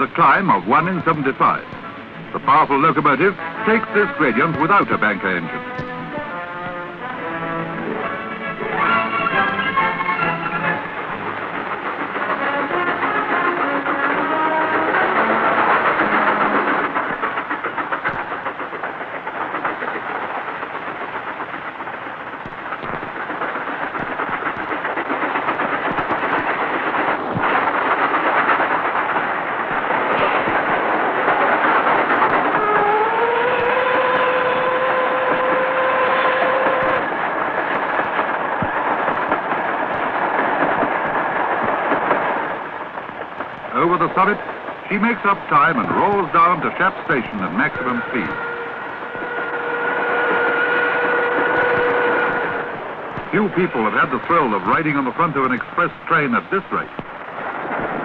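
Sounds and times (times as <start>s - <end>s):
train rushing on rails: 0.0s - 58.0s
steam locomotive whistle: 3.4s - 10.9s, 32.5s - 37.2s, 47.5s - 52.9s.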